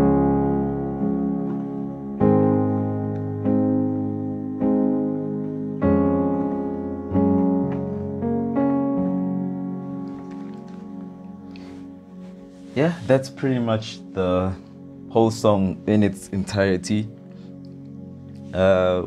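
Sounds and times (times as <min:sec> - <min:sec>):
piano chords ringing: 0:00.0 - 0:19.0.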